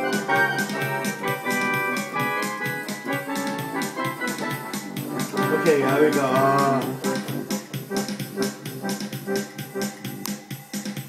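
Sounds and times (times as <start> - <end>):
electronic keyboard organ tone: 0.0 - 10.6
steady beat: 0.0 - 11.0.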